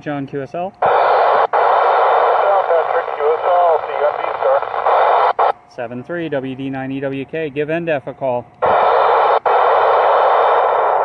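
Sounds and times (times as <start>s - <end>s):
faint broken radio voice: 0.8s - 5.5s
radio static hiss: 0.8s - 6.1s, 8.6s - 11.0s.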